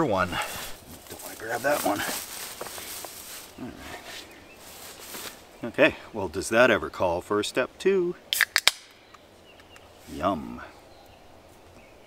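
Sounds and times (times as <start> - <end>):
beer can cracked open: 8.3 - 9.0.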